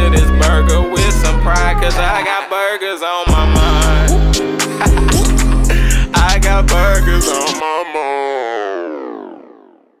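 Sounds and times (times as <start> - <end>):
synthesizer notes: 0.0 - 2.3, 3.3 - 10.0.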